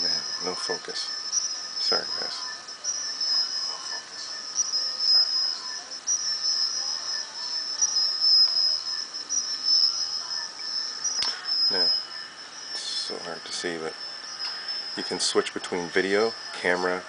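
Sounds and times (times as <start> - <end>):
high-pitched audio feedback whistle: 0.0 - 17.0.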